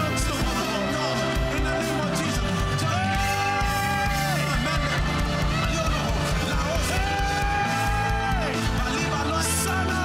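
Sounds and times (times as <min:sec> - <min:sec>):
band playing drums bass and keyboards: 0:00.0 - 0:10.0.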